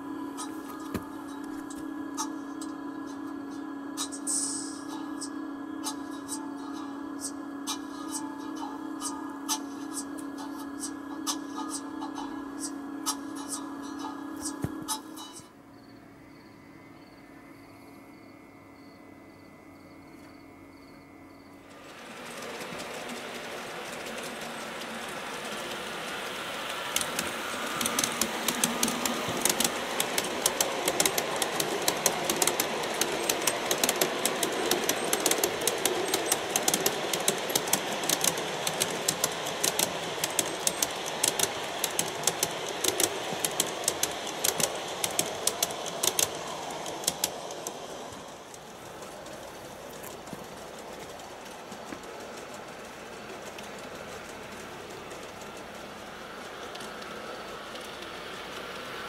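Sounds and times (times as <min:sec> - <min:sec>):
wheels clicking over rail joints: 0:00.0 - 0:15.5, 0:21.6 - 0:59.0
model train rumbling: 0:00.0 - 0:59.0.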